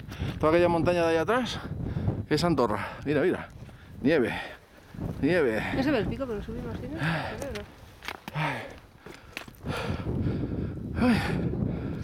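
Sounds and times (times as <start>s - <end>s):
footsteps: 4.7s - 9.7s
person breathing hard: 8.2s - 12.0s.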